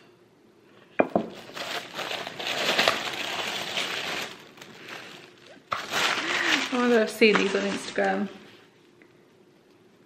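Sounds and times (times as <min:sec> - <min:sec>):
paper crinkling and rustling: 0:01.3 - 0:08.5.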